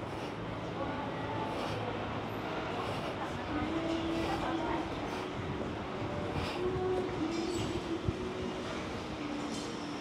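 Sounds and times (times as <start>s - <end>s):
continuous rumble: 0.0s - 10.0s
mechanical hum: 0.0s - 10.0s.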